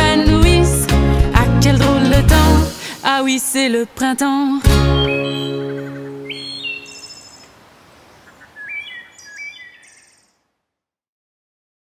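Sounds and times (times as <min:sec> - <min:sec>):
birds chirping: 0:04.7 - 0:10.4.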